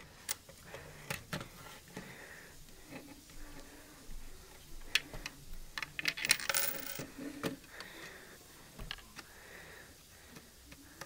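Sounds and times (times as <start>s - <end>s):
coin rattling through plastic mechanism: 6.0s - 7.1s.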